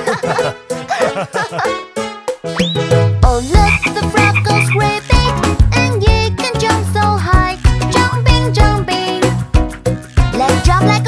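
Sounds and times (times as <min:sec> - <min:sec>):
upbeat children's song: 0:02.6 - 0:11.0
cartoon frog croaking: 0:03.6 - 0:05.0.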